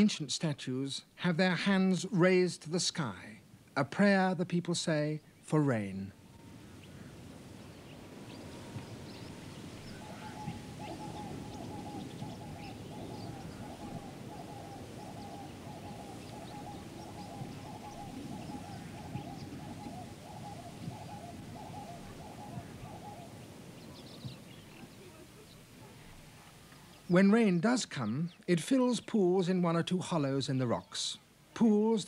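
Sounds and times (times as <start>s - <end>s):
rapid pulsing animal call: 6.2s - 26.4s.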